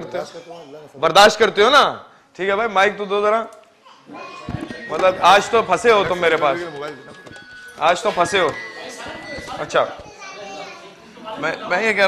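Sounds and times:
audience chatter: 0:03.8 - 0:12.0.

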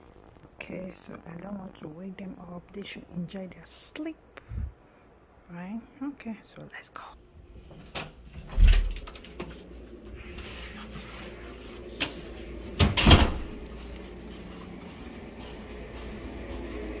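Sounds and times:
door thudding: 0:12.8 - 0:13.6.

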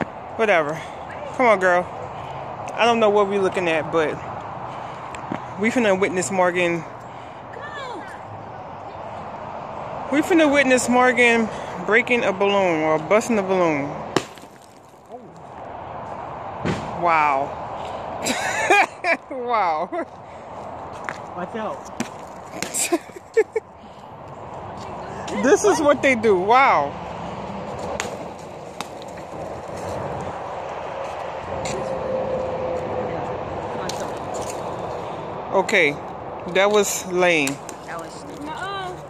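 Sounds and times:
highway traffic rushing: 0:00.0 - 0:39.0
ice ball smashing on concrete: 0:14.2 - 0:15.2.

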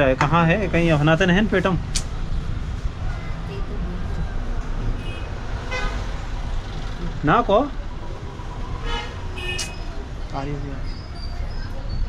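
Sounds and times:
road traffic rumbling: 0:00.0 - 0:12.0.

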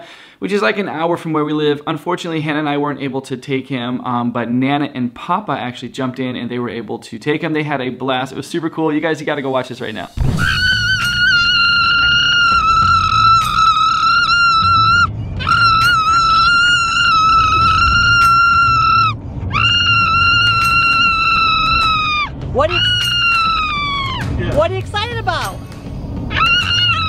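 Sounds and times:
boy screaming with excitement: 0:10.4 - 0:24.4, 0:26.3 - 0:27.0.

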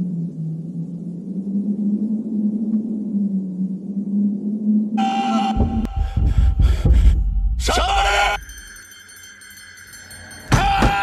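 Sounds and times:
high ringing tone: 0:08.4 - 0:11.0.

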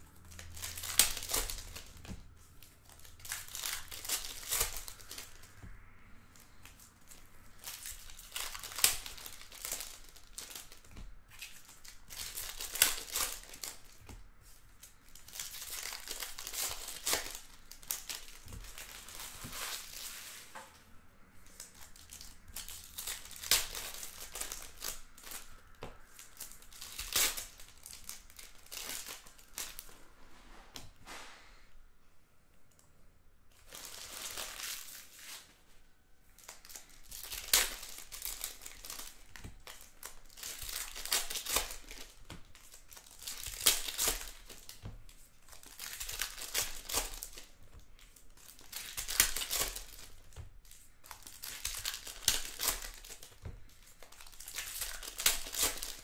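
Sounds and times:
plastic wrapping crinkling and tearing: 0:00.0 - 0:20.6, 0:21.4 - 0:30.0, 0:33.5 - 0:35.5, 0:36.4 - 0:56.0.

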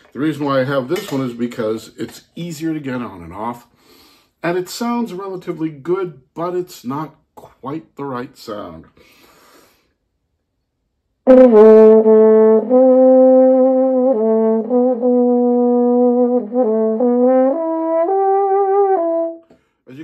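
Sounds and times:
muted trombone phrase: 0:11.3 - 0:20.0.

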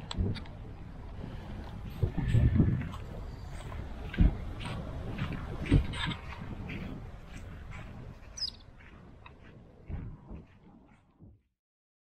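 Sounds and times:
wind buffeting microphone: 0:00.0 - 0:11.5
bird chirps: 0:08.2 - 0:08.8.

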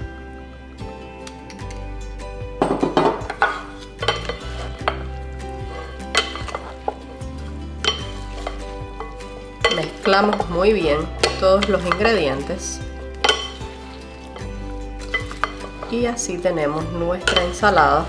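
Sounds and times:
background music: 0:00.0 - 0:18.0
wood knocking on glass: 0:02.6 - 0:03.6
wet salad rustling: 0:03.3 - 0:18.0.

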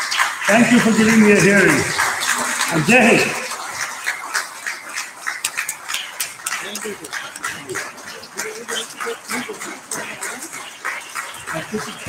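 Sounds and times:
audience applauding: 0:00.0 - 0:12.0
voices: 0:00.5 - 0:03.6, 0:06.4 - 0:12.0.

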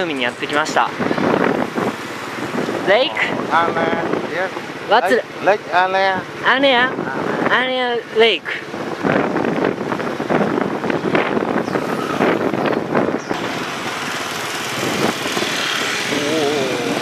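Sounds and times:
wind on microphone: 0:00.0 - 0:05.6, 0:06.2 - 0:07.9, 0:08.5 - 0:13.7, 0:14.3 - 0:17.0
motorbike engine and road noise: 0:00.0 - 0:17.0
wavering voice-like tone: 0:16.1 - 0:17.0.

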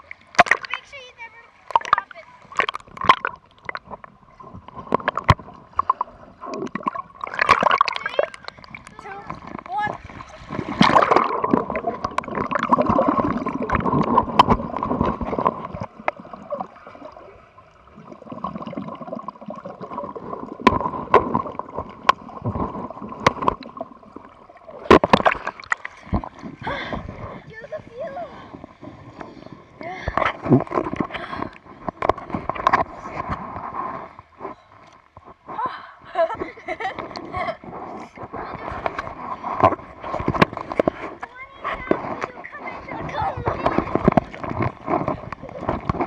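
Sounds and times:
underwater bubbles gurgling: 0:00.0 - 0:46.0
underwater splashes: 0:00.0 - 0:46.0
water sloshing: 0:00.0 - 0:46.0.

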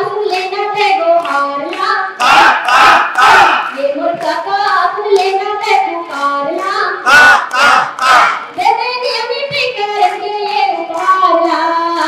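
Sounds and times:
woman singing through pa: 0:00.0 - 0:12.0.

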